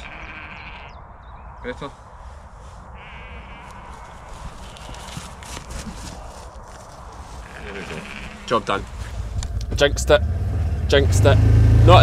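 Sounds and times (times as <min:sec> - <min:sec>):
sheep bleating: 0:00.0 - 0:01.0, 0:03.0 - 0:05.1, 0:07.4 - 0:08.9
scuffs and rustles: 0:01.8 - 0:09.6
low outdoor rumble: 0:03.2 - 0:12.0.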